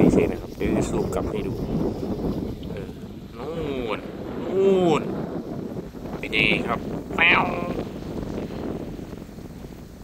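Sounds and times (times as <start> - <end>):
wind blowing on microphone: 0.0 - 10.0.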